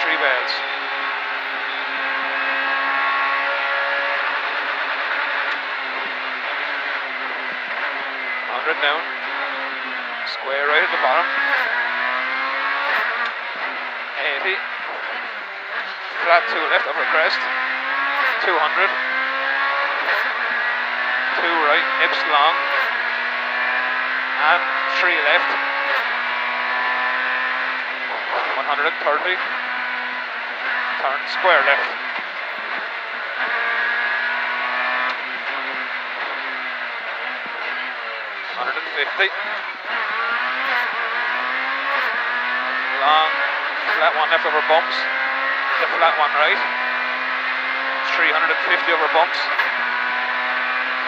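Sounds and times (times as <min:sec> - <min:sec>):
car engine running inside cabin: 0:00.0 - 0:51.0.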